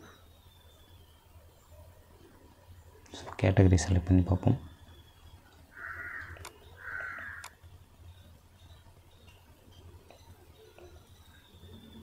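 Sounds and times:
faint bird calls: 4.4s - 12.0s.

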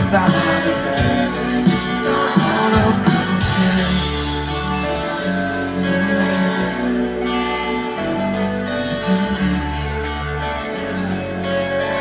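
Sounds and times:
live pop band playing: 0.0s - 12.0s.

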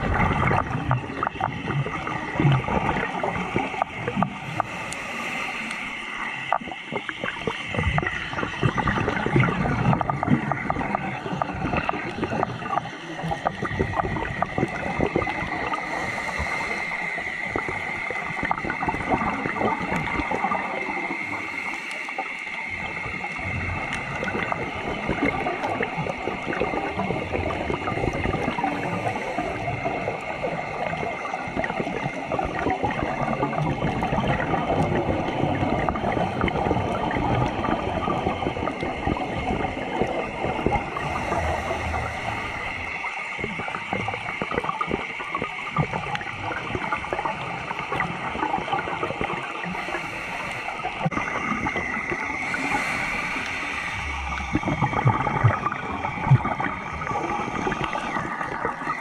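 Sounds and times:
underwater hiss with crackling clicks: 0.0s - 59.0s.

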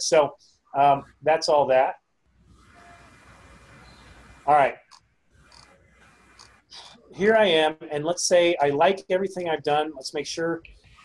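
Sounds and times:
faint microphone hiss: 0.0s - 11.0s.

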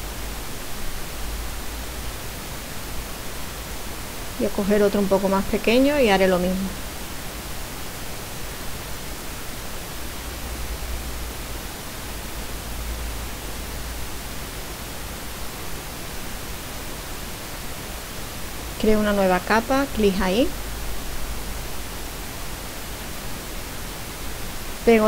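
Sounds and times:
background recording hiss: 0.0s - 25.0s
person speaking: 4.4s - 6.8s, 18.8s - 20.6s.

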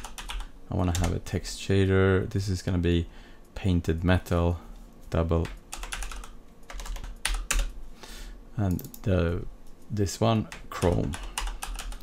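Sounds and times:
computer keyboard typing: 0.0s - 1.2s, 5.4s - 7.8s, 8.7s - 9.0s, 10.5s - 12.0s.

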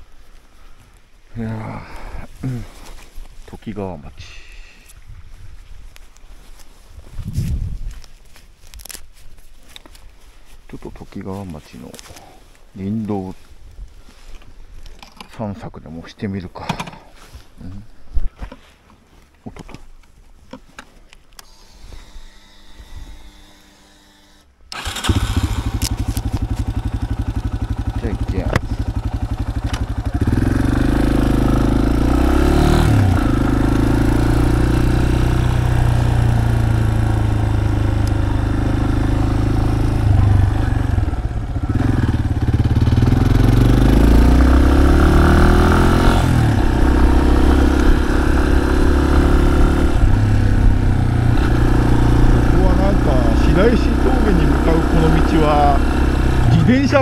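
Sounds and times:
motorcycle engine: 24.7s - 57.0s.

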